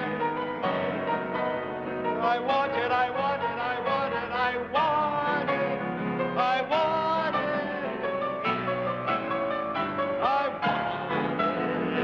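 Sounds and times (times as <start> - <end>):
piano playing: 0.0 - 12.0
man singing: 2.0 - 8.6, 10.0 - 12.0.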